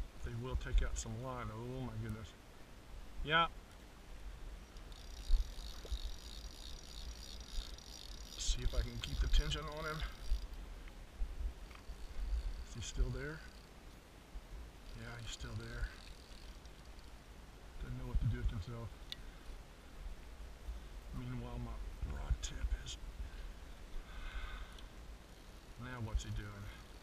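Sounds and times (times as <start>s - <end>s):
fishing reel drag ratcheting: 4.7s - 10.6s, 11.6s - 14.0s, 14.6s - 17.3s, 24.4s - 27.0s.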